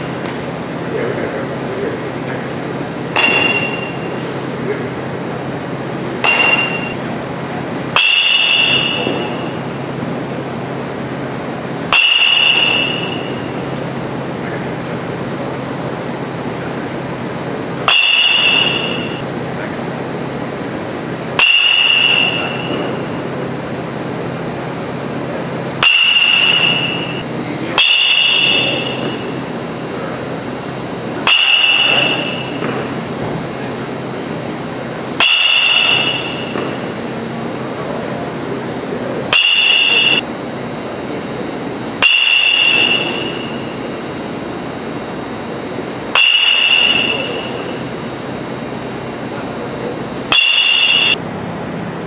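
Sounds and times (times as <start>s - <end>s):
steady background noise: 0.0s - 52.0s
metal bat hitting ball: 3.1s - 4.4s, 6.2s - 7.2s, 7.8s - 9.7s, 11.8s - 13.6s, 17.8s - 19.2s, 21.4s - 23.0s, 25.8s - 27.2s, 27.8s - 29.5s, 31.2s - 33.0s, 35.2s - 37.2s, 39.3s - 40.2s, 42.0s - 44.0s, 46.1s - 47.8s, 50.3s - 51.2s.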